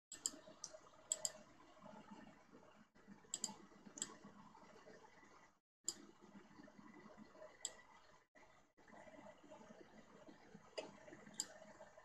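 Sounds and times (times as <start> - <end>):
computer mouse clicks: 0.1 - 1.4, 3.3 - 4.2, 10.8 - 11.6.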